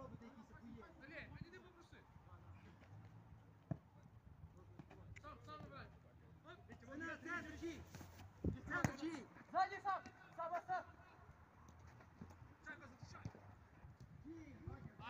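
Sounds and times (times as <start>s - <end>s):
football being kicked: 8.4s - 9.2s.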